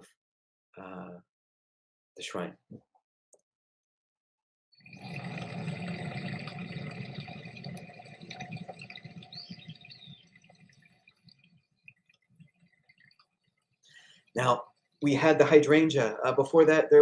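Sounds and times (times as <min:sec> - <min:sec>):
outdoor garden ambience: 0:04.8 - 0:17.0.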